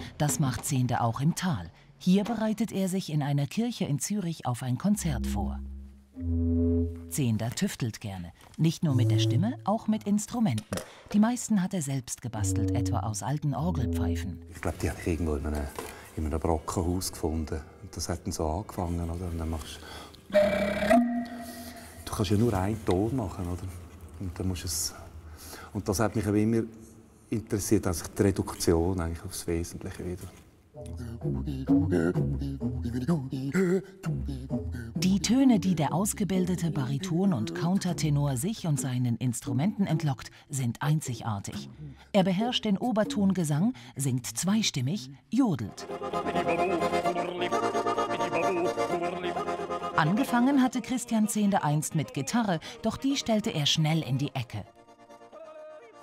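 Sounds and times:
wooden organ pipe note: 5.1s - 7.2s, 20.4s - 21.9s
man overtone singing: 30.8s - 35.7s, 45.8s - 52.8s, 55.2s - 56.0s.

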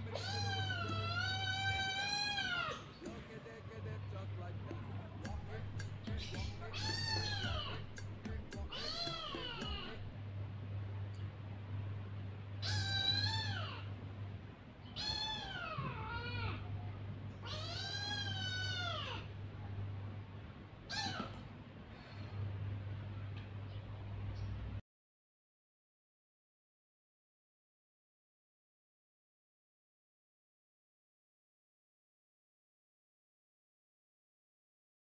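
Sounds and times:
kitten meowing: 0.0s - 2.8s, 6.3s - 7.9s, 8.7s - 10.0s, 12.6s - 13.8s, 14.9s - 16.6s, 17.4s - 19.2s, 20.9s - 21.4s.

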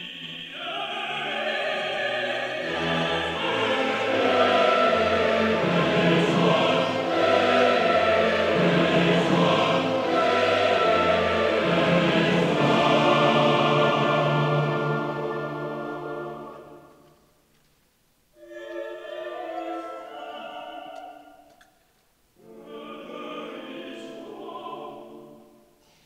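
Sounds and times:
large choir singing: 0.0s - 17.0s, 18.4s - 21.5s, 22.4s - 25.8s
orchestra playing: 0.1s - 17.1s.

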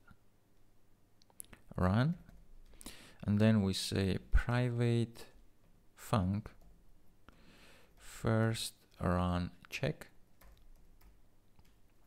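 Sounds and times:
keystrokes on computer keyboard: 10.3s - 12.0s.

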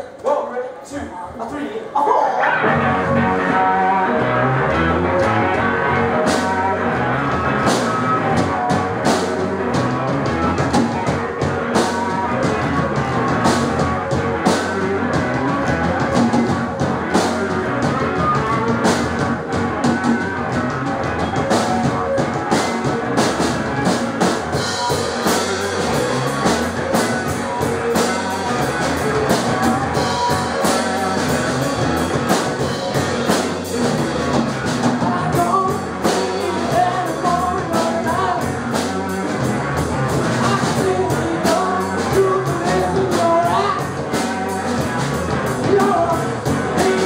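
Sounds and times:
rock band playing: 1.3s - 47.0s
person singing: 2.4s - 9.7s, 34.8s - 39.2s, 40.2s - 47.0s
steady drum beat: 2.7s - 47.0s.

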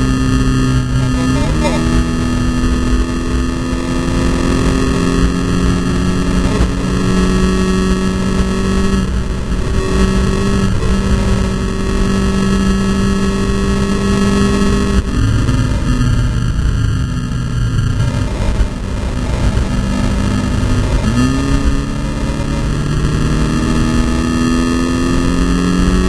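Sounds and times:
race car engine at speed: 0.0s - 26.0s
road and wind noise: 0.0s - 26.0s.

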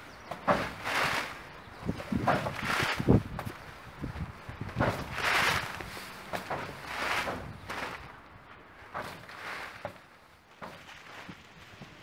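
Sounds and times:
feet shifting on plastic sheeting: 0.5s - 3.5s, 4.2s - 8.1s, 9.0s - 12.0s.

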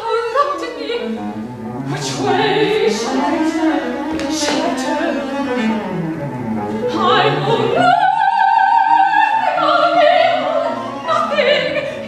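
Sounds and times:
chamber orchestra: 0.0s - 12.0s
cello playing slow melody: 0.8s - 8.1s.

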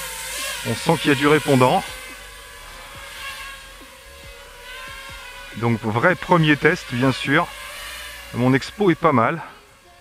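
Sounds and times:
quadcopter motors humming: 0.0s - 10.0s.

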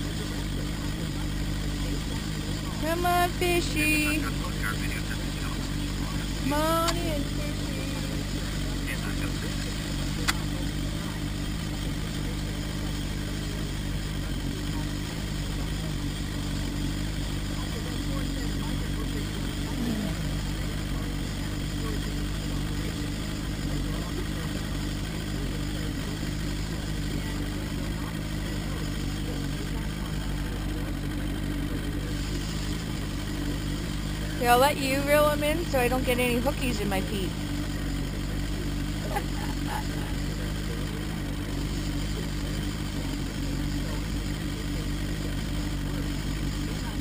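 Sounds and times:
outboard motor humming: 0.0s - 47.0s
sharp click: 10.2s - 10.5s.

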